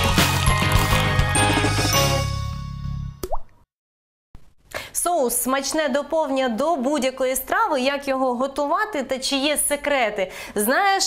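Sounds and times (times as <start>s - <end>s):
tv intro jingle: 0.0s - 3.2s
cartoon plop rising in pitch: 3.2s - 3.6s.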